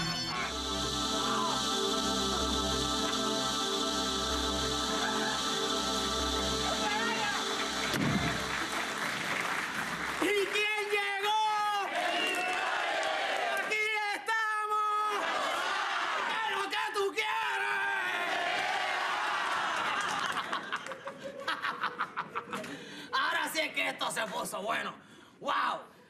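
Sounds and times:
audience applauding: 6.4 - 13.8, 18.4 - 21.2
studio audience laughing: 20.0 - 22.7.

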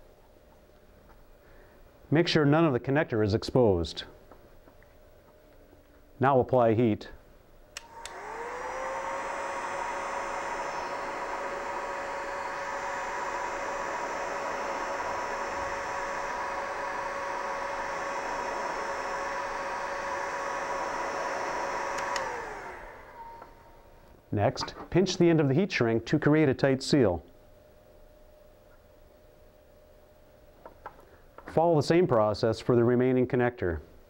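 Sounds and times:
heat gun fan whine: 7.6 - 32.2
heat gun switch click: 7.8 - 8.3, 21.9 - 22.4.

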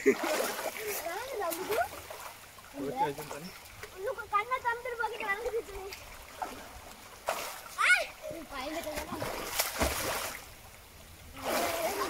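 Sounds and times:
water splashing: 0.0 - 12.0.

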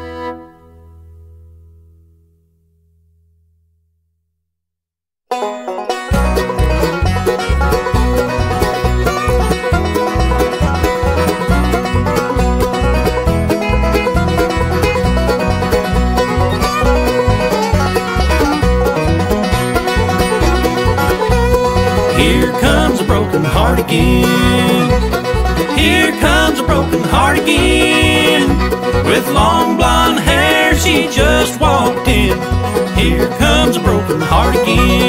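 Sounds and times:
banjo: 0.0 - 0.5, 5.3 - 35.0
guitar: 0.0 - 3.0, 5.3 - 35.0
pulsing bass: 6.0 - 35.0
person singing: 22.1 - 35.0.

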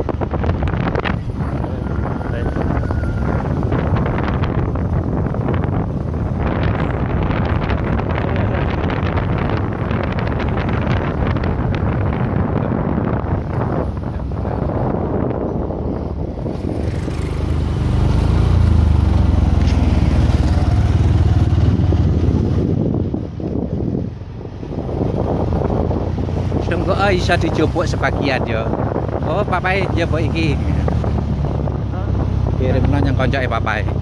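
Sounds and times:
motorcycle running: 0.0 - 34.0
wind buffeting microphone: 0.0 - 34.0.

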